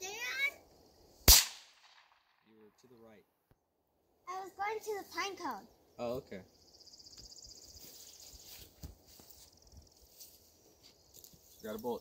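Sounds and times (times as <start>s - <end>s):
high insect trill: 5.0s - 12.0s.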